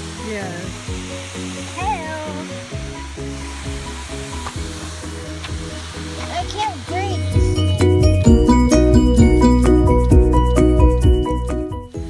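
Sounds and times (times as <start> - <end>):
rushing water of waterfall: 0.0 - 8.3
background music of held chords: 0.0 - 12.0.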